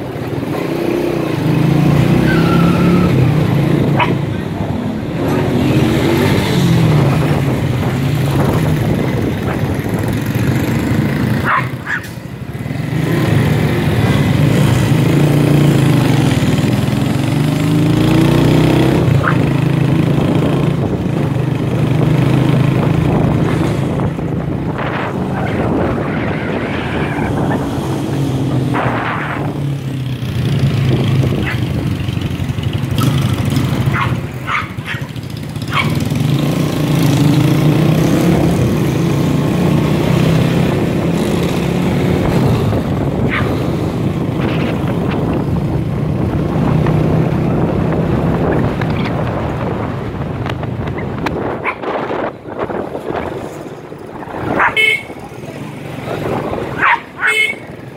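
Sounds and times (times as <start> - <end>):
small motorcycle engine: 30.2 - 44.7.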